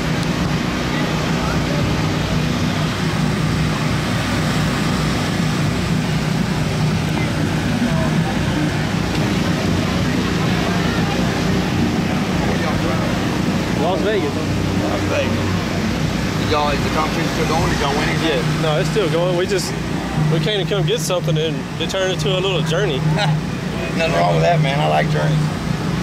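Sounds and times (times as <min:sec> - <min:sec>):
crowd chatter: 0:00.0 - 0:26.0
low engine hum: 0:00.0 - 0:26.0.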